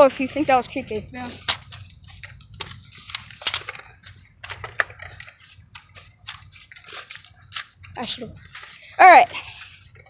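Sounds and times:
footsteps crunching on dirt path: 0.0 - 10.0.

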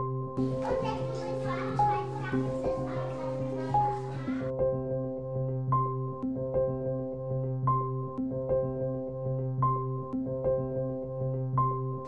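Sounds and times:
children playing and chattering: 0.4 - 4.5.

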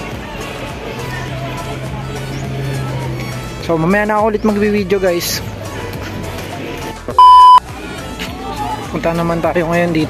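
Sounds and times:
single-pitch test-tone beep: 7.2 - 7.6.

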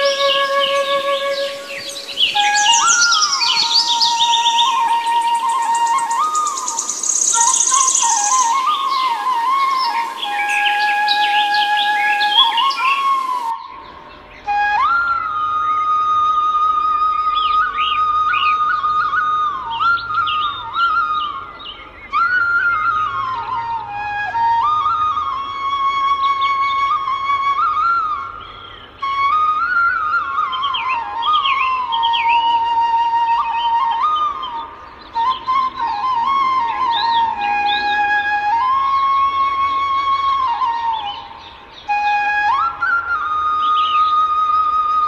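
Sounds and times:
bamboo flute melody: 0.0 - 45.0
birdsong chirping: 0.0 - 45.0.

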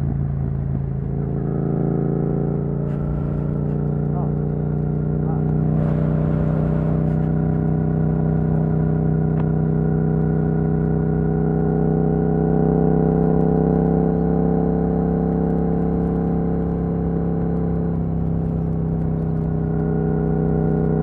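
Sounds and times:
motorcycle engine cruising: 0.0 - 21.0.

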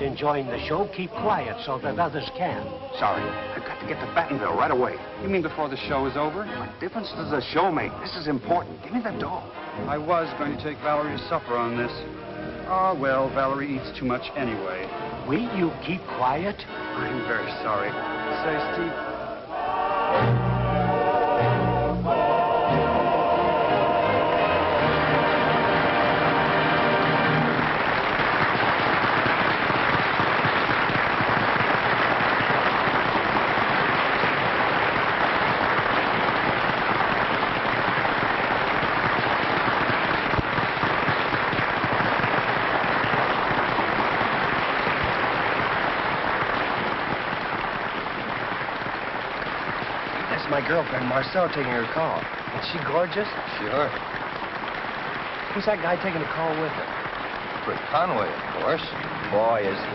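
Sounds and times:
singers with orchestra: 0.0 - 5.2, 17.9 - 27.6
audience applause: 0.0 - 59.9.

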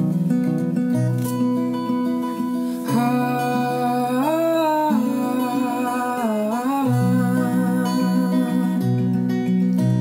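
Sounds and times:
acoustic guitar: 0.0 - 10.0
man humming: 2.9 - 9.0.

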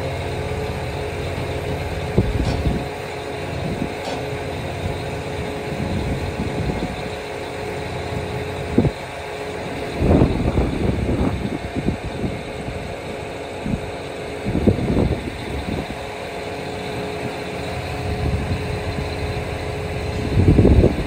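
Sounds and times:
engine idling: 0.0 - 21.0.

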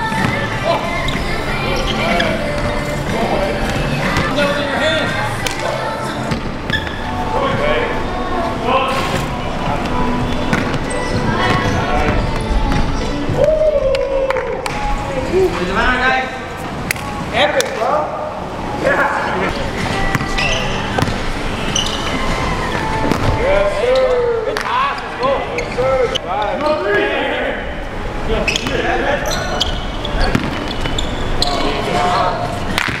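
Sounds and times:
basketball bouncing on hard court: 21.0 - 21.2.

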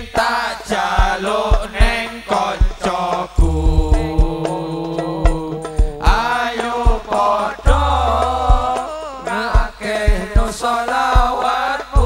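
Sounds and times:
drum beats: 0.0 - 12.0
male voices singing together: 0.0 - 12.0.

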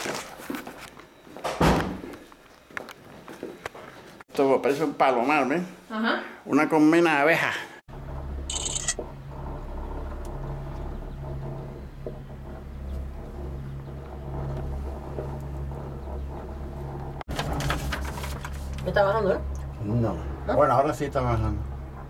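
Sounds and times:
cable car cabin hum and rumble: 7.9 - 17.8.

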